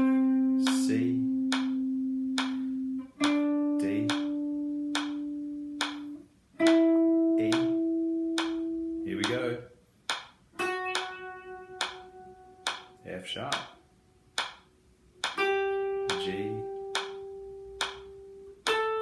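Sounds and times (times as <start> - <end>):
electric guitar single notes: 0.0 - 9.7, 10.5 - 19.0
metronome clicking: 0.0 - 19.0.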